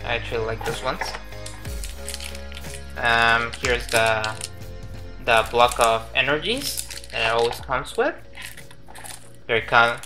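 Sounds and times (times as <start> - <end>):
background music with held tones: 0.0 - 10.0
cardboard box and plastic rustling: 0.6 - 4.5, 5.3 - 10.0.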